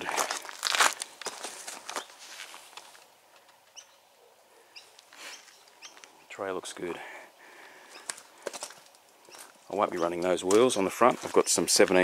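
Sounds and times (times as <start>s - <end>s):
footsteps on paving stones: 0.0s - 3.1s, 8.0s - 12.0s.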